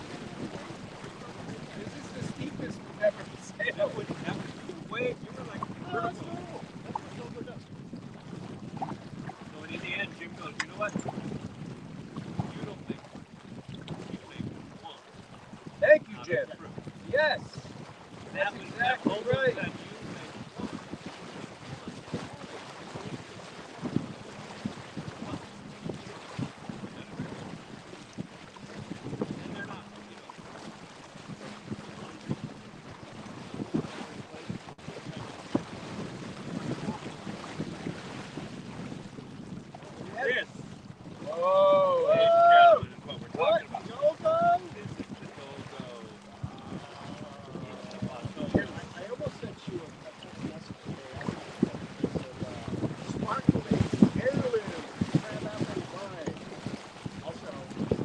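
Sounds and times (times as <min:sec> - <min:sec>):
voices: 0:00.0 - 0:07.6, 0:15.8 - 0:17.6, 0:18.3 - 0:20.8, 0:29.3 - 0:30.5, 0:39.9 - 0:40.5, 0:41.2 - 0:51.3
water slapping along hull: 0:00.0 - 0:58.0
wind buffeting microphone: 0:00.0 - 0:58.0.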